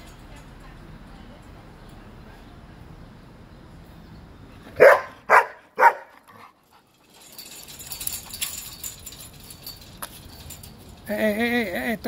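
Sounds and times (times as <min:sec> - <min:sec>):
faint rustling: 0:04.0 - 0:11.1
puppy barking: 0:04.8 - 0:06.2.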